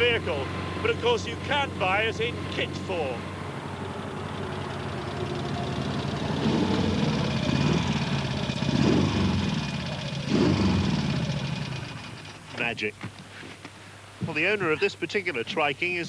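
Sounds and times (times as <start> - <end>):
motorcycle engine revving: 0.0 - 12.6.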